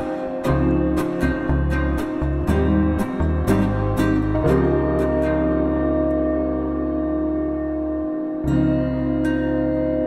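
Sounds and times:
dream-pop instrumental chords: 0.0s - 10.0s.

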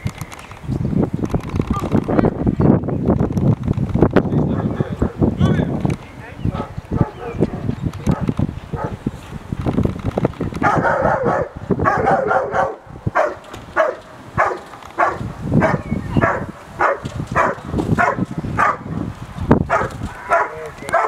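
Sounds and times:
dog barking: 6.6s - 9.0s, 10.6s - 18.9s, 19.7s - 21.0s.

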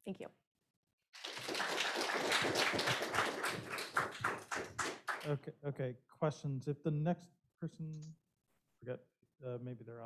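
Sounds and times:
audience applauding: 1.2s - 5.4s.

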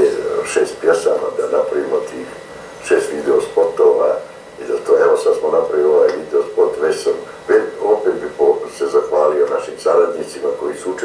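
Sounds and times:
man talking through television speaker: 0.0s - 11.0s.

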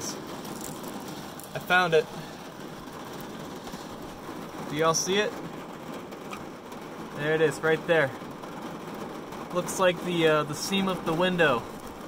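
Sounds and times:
rain on car roof: 0.0s - 12.0s.

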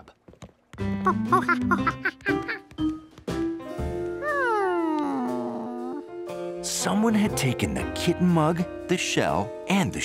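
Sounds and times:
background music: 0.7s - 10.0s.

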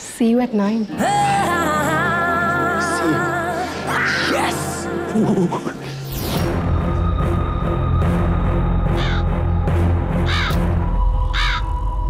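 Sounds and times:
background music: 0.0s - 12.0s
crow cawing: 8.9s - 9.3s, 10.2s - 11.8s.

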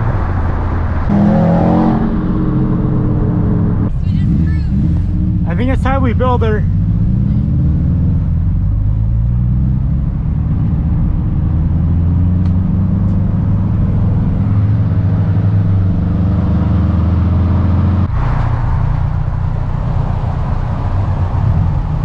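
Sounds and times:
car driving past: 0.0s - 5.9s
car engine drone in cabin: 0.0s - 22.0s.

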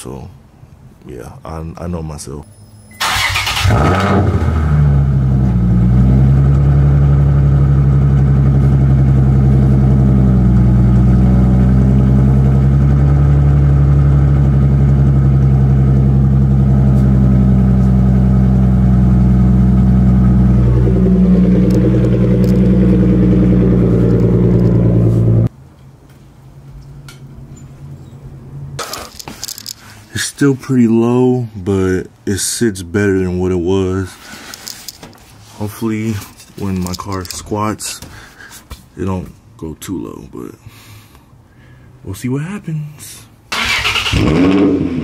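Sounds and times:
car engine running steadily: 3.7s - 25.5s.

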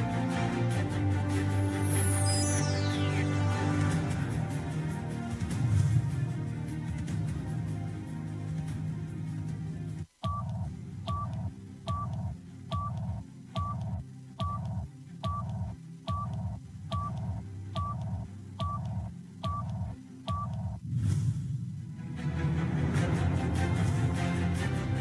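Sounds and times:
low bass music: 0.0s - 25.0s
two-tone countdown beeps: 10.2s - 20.8s.

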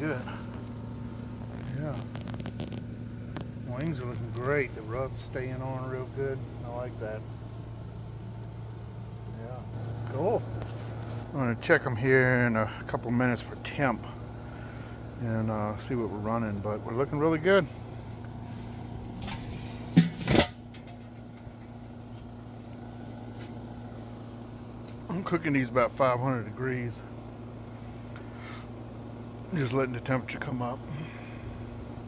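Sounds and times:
faint outdoor background noise: 0.0s - 32.0s
steady low motor hum: 0.0s - 32.0s
metal grill lid clanking: 19.1s - 21.7s.

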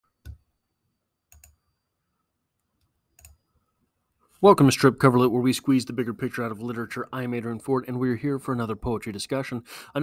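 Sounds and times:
computer mouse clicks: 1.3s - 1.6s, 2.6s - 3.4s.

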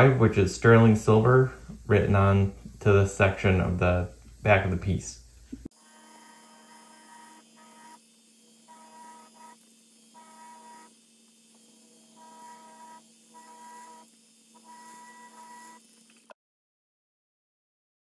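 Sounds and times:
steady low hum: 0.0s - 15.9s
engraving handpiece buzzing: 1.3s - 16.4s.

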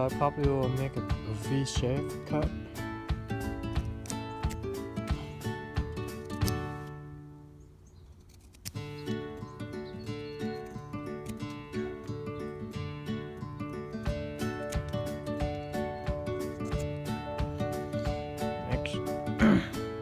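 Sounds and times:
instrumental music with ringing notes: 8.9s - 20.0s.

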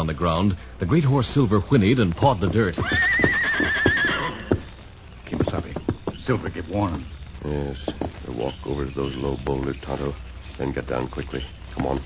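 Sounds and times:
hoof thumps on dirt: 2.1s - 3.4s, 4.5s - 7.1s, 7.8s - 8.6s
horse whinnying: 2.8s - 4.7s.

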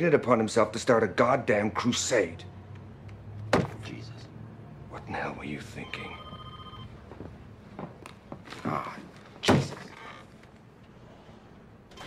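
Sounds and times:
electronic telephone ring: 5.8s - 7.0s.

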